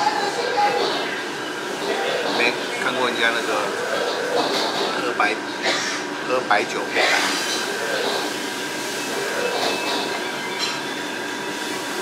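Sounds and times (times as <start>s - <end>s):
mechanical hum: 0.0s - 12.0s.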